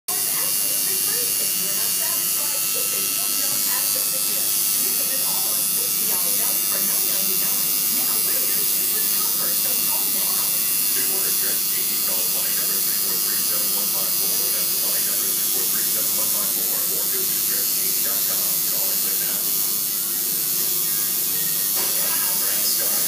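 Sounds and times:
tattoo machine buzzing: 0.1s - 23.0s.

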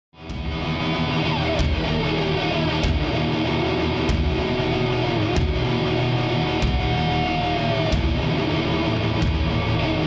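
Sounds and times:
distorted electric guitars: 0.2s - 10.0s
heavy drum and cymbal hits: 0.2s - 10.0s.

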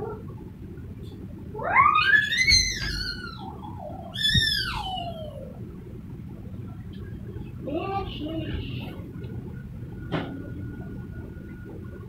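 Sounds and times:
high-pitched wordless wailing calls: 1.6s - 5.6s.

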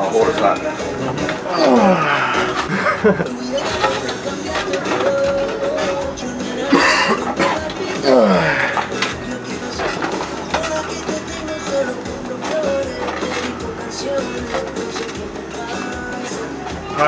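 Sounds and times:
background music held tones: 0.0s - 17.0s.

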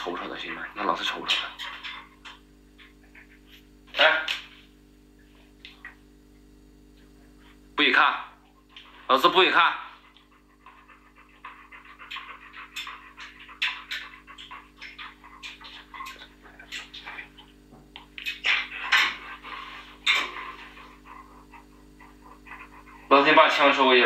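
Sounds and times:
dog panting: 0.0s - 3.8s, 8.2s - 24.0s
faint steady hum: 0.0s - 24.0s.

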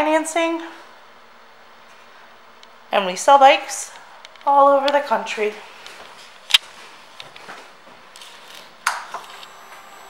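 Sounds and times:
faint high whine: 8.2s - 10.0s.

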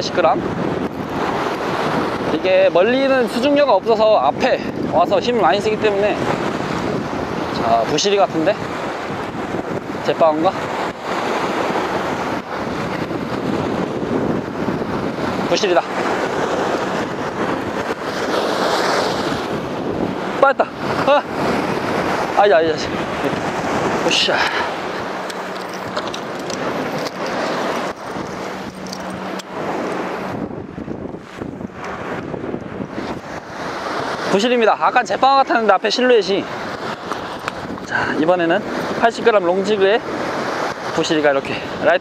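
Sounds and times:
waves washing against rocks: 0.0s - 42.0s
wind buffeting microphone: 0.0s - 42.0s.

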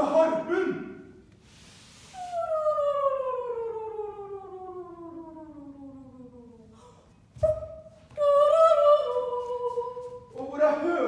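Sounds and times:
short breathy hiss: 1.4s - 2.3s.

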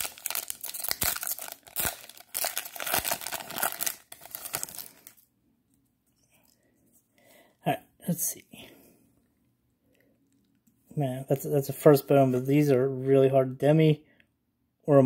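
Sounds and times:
foil wrapper tearing and crinkling: 0.0s - 5.2s.

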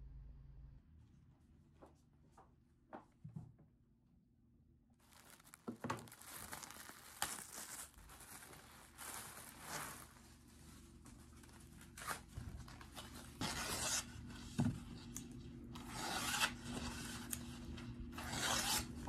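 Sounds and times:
wrapping paper rustling: 5.0s - 13.4s
scissors cutting paper: 15.0s - 17.5s, 18.1s - 19.0s.

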